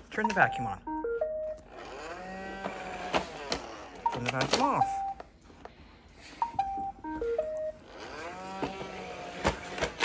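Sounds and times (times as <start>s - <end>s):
robot vacuum motor whine: 1.6s - 4.1s, 7.8s - 10.0s.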